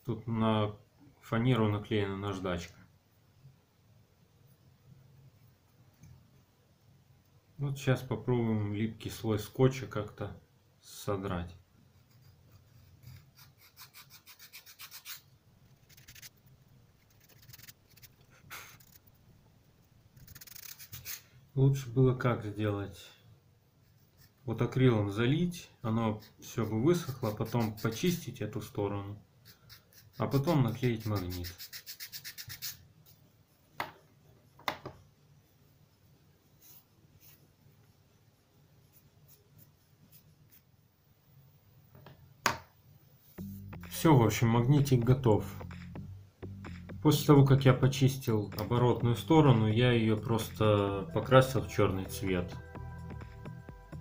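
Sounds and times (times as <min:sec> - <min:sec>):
sandpaper scraping wood: 0:12.1 - 0:16.4, 0:17.0 - 0:19.1, 0:20.2 - 0:21.3, 0:26.2 - 0:28.2, 0:29.5 - 0:32.8
fingers rubbing wood: 0:15.8 - 0:16.4, 0:26.2 - 0:28.2, 0:29.5 - 0:32.8.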